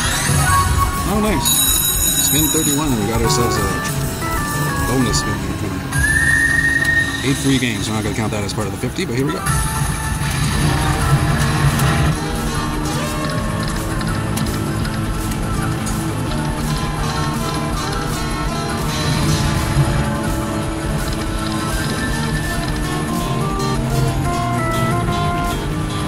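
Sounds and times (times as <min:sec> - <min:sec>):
slot machine bonus music: 0:00.1 - 0:26.0.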